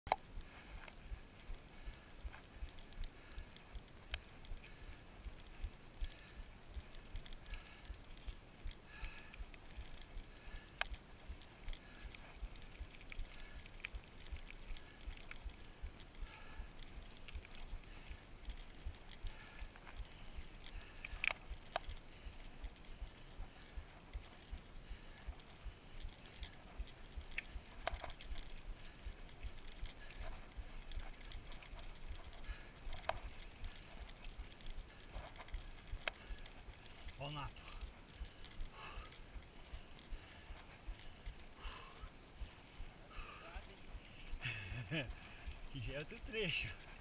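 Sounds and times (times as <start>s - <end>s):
bike gear rattling clicks: 0.1s - 47.0s
bike tyres rumbling on gravel: 0.6s - 47.0s.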